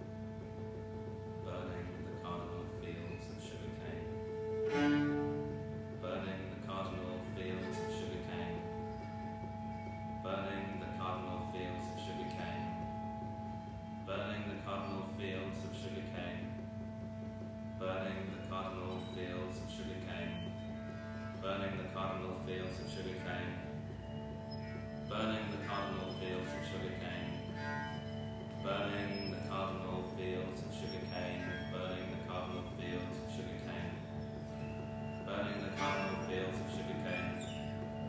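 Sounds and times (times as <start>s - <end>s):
bowed cello note: 0.0s - 38.0s
held drone: 0.0s - 38.0s
person chanting: 1.4s - 5.0s, 6.0s - 9.0s, 10.2s - 13.1s, 14.1s - 16.6s, 17.8s - 20.6s, 21.3s - 23.8s, 25.1s - 34.2s, 35.2s - 37.8s.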